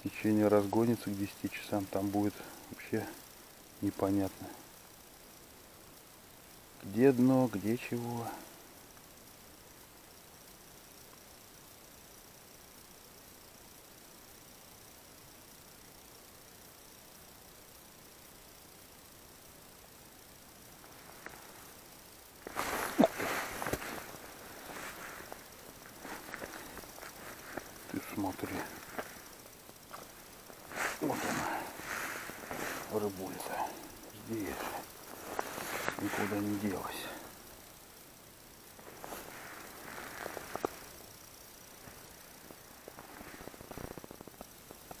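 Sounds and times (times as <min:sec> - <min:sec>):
faint steady hiss: 0:00.0 - 0:45.0.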